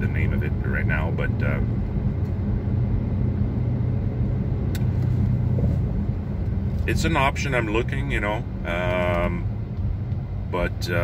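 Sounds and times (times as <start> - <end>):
car engine drone: 0.0 - 11.0
road noise inside car: 0.0 - 11.0.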